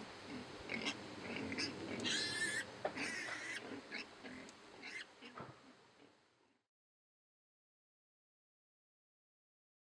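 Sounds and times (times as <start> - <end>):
pigs grunting: 0.2 - 6.6
piglet squealing: 0.8 - 3.6.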